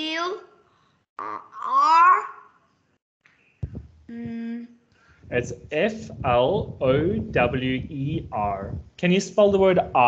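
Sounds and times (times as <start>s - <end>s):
child drawn-out vocal sounds: 1.2s - 2.4s.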